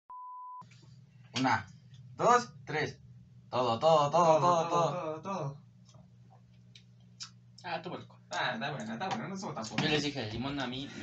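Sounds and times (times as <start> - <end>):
steady pure beep: 0.1 - 0.6.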